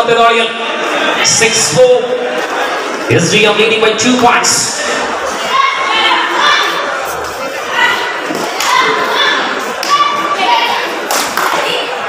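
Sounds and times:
spectators shouting and cheering: 0.0 - 12.0.

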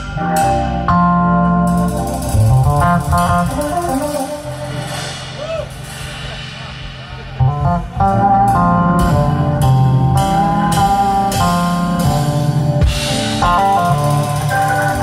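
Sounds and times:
organ chords: 0.0 - 5.2, 7.4 - 15.0
electric bass line: 0.0 - 15.0.

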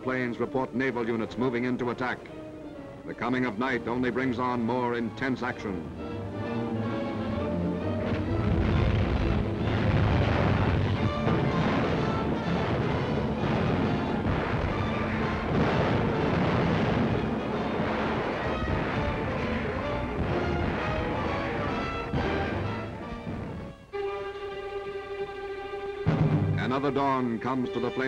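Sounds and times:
background music: 0.0 - 28.0
heavy gunfire: 8.0 - 23.6, 26.1 - 26.8
shells exploding: 8.0 - 23.6, 26.1 - 27.0.

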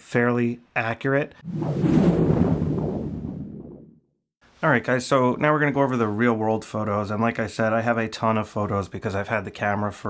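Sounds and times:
low rumbling swell: 1.4 - 3.9.

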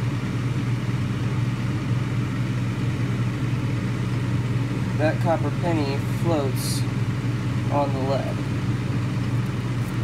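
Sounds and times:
low machine hum: 0.0 - 10.0
constant airy noise: 3.0 - 10.0.

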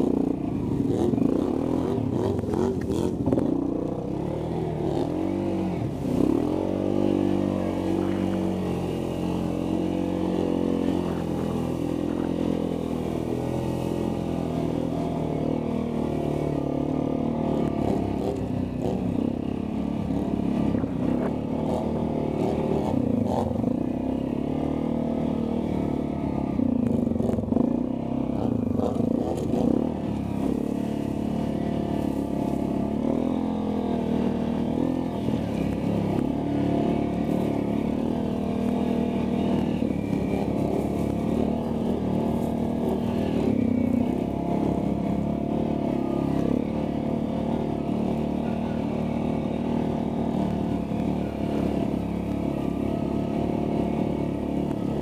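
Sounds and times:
atv engine revving: 0.0 - 55.0.

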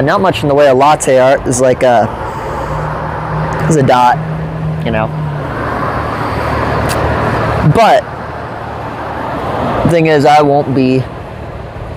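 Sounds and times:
road traffic: 0.0 - 11.9
low engine hum: 1.4 - 11.9.

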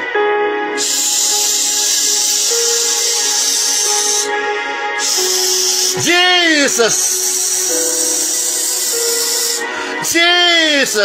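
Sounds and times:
slow keyboard chords: 0.0 - 11.0
loud steady hiss: 0.8 - 9.8.

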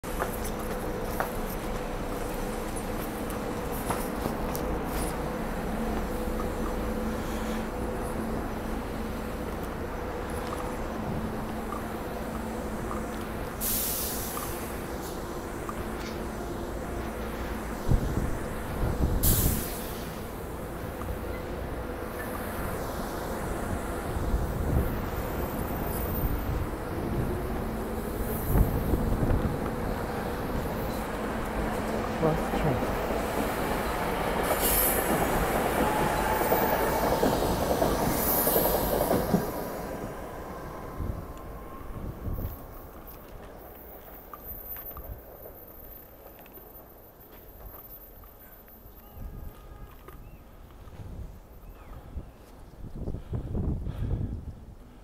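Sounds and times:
train low hum: 0.0 - 55.0
short air hisses: 13.6 - 15.2, 19.2 - 20.3.

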